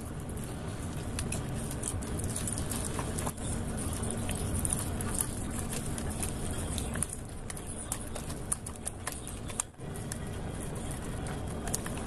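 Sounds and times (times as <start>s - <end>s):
low steady rumble: 0.0s - 12.0s.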